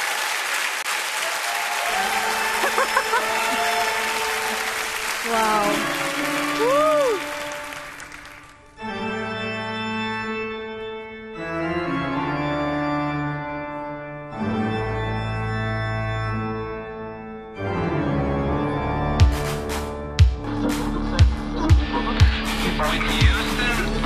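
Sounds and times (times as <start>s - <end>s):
audience applause: 0.0s - 8.8s
organ-like keyboard chords: 1.9s - 24.0s
person whooping: 6.5s - 7.4s.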